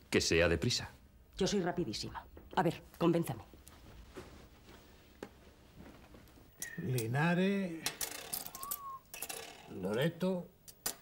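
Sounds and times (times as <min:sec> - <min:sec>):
metal medals clinking on glass: 0:08.0 - 0:09.7.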